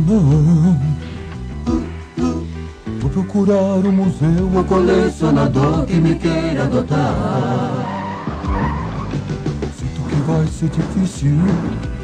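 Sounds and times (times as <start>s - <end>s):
instrumental music: 0.0s - 12.0s
tyres skidding: 5.4s - 12.0s.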